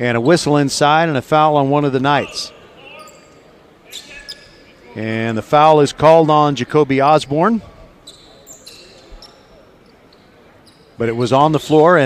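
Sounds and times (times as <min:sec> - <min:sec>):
low hall noise: 0:00.0 - 0:12.0
sneakers squeaking on court: 0:02.2 - 0:04.9, 0:07.8 - 0:11.0.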